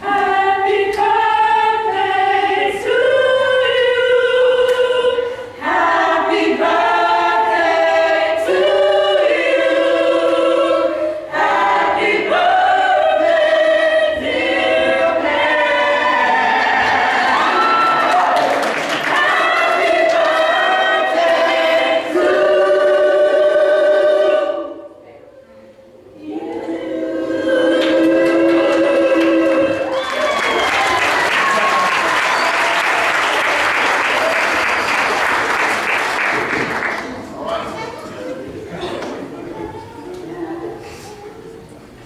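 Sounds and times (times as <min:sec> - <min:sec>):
choir singing in harmony: 0:00.0 - 0:36.5.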